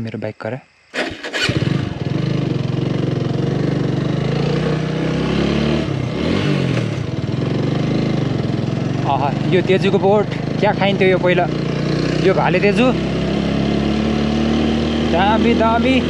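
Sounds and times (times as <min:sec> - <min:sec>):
motorcycle engine running: 0:01.0 - 0:16.0.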